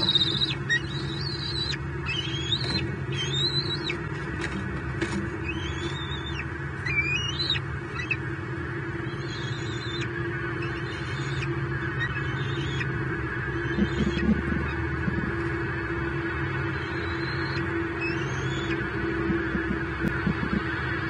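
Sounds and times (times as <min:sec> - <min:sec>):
young eagles calling: 0:00.0 - 0:04.4, 0:05.3 - 0:20.8
low electrical hum: 0:00.0 - 0:21.0.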